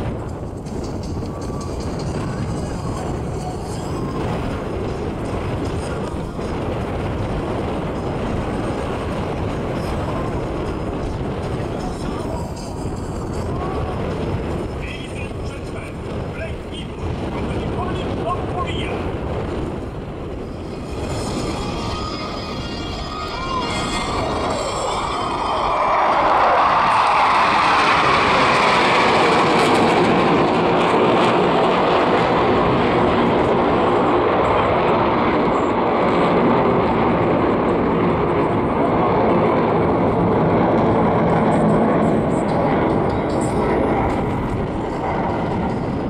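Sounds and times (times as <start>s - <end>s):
jet aircraft roar overhead: 0.0s - 46.0s.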